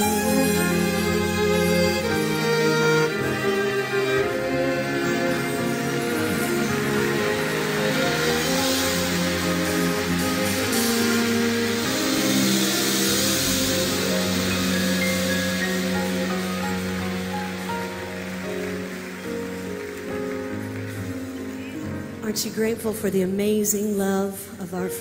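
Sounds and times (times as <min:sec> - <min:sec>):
violins playing held chords: 0:00.0 - 0:22.5
live band playing worship song: 0:00.0 - 0:23.6.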